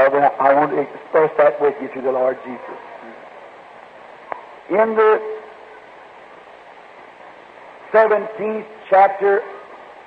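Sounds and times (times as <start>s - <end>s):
man talking: 0.0s - 3.2s, 4.7s - 5.5s, 7.9s - 9.6s
tape hiss: 0.0s - 10.0s.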